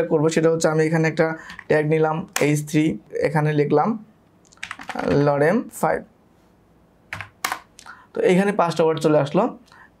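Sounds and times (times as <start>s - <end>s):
computer keyboard typing: 4.5s - 5.2s, 7.1s - 7.7s.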